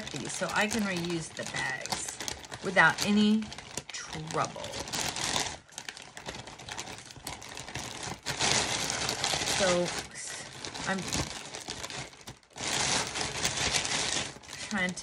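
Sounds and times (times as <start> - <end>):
plastic bag crinkling: 0.0 - 15.0
scissors cutting plastic: 0.0 - 15.0.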